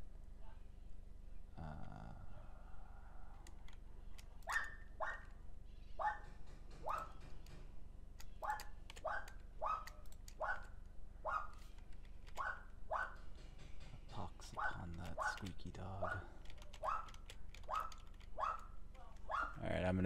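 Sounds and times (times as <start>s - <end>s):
dog yapping: 8.4s - 11.6s, 12.4s - 13.2s, 16.0s - 19.6s.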